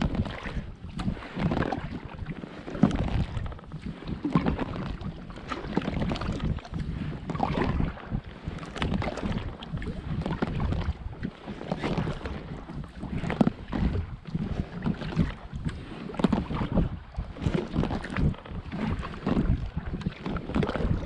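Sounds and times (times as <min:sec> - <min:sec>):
paddle splashing in water: 0:00.0 - 0:21.0
wind on microphone: 0:00.0 - 0:21.0.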